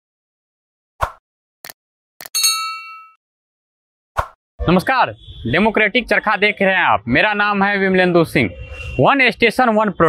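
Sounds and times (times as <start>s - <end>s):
bright bell ding: 2.4s - 3.2s.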